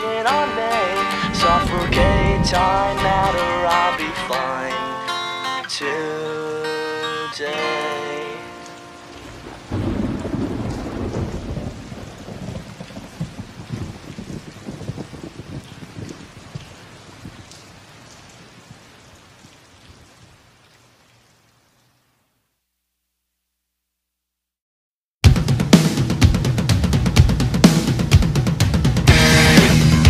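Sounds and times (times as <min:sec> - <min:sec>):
song ending: 0:00.0 - 0:08.6, 0:29.1 - 0:30.0
rain: 0:00.0 - 0:22.8, 0:26.4 - 0:30.0
thunderclap: 0:00.7 - 0:05.4, 0:09.3 - 0:16.6.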